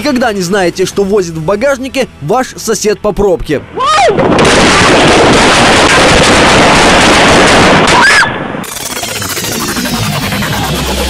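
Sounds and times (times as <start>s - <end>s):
rapid gunshots: 4.4s - 11.0s
low steady din: 8.4s - 11.0s.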